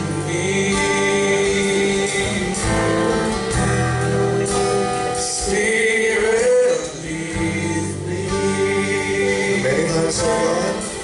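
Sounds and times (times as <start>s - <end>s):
band playing: 0.0s - 11.0s
voices singing slow song: 0.0s - 11.0s.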